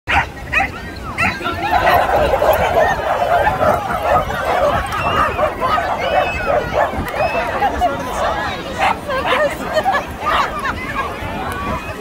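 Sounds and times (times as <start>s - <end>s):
dogs barking and yipping: 0.1s - 10.7s
crowd of people talking: 0.1s - 12.0s.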